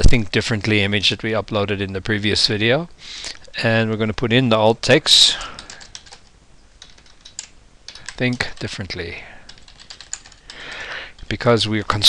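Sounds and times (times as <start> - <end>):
keyboard keystrokes: 5.6 - 8.7, 9.5 - 10.8.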